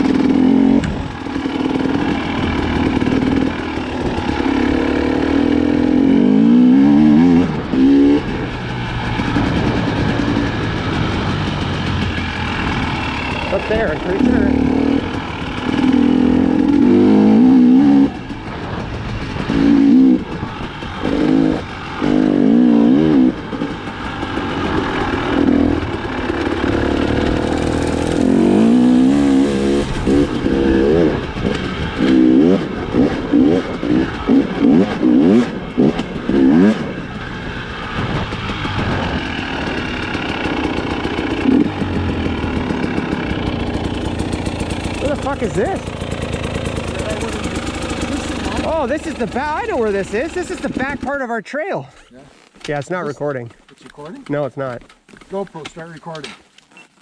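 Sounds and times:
dirt bike engine revving: 0:00.0 - 0:51.2.

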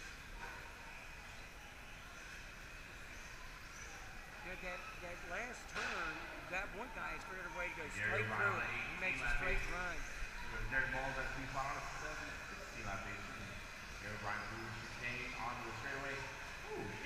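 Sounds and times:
faint high electric whine: 0:00.0 - 0:17.0
people talking: 0:04.5 - 0:17.0.

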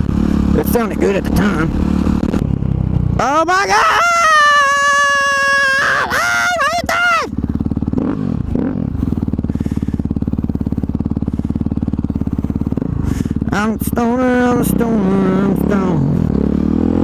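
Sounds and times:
motorcycle engine running: 0:00.0 - 0:17.0.

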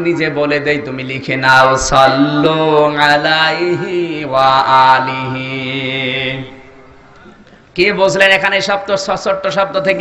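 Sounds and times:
man chanting in sing-song: 0:00.0 - 0:06.7.

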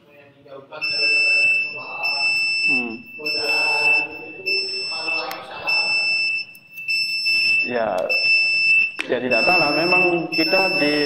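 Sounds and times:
high-pitched whine: 0:00.8 - 0:08.6.

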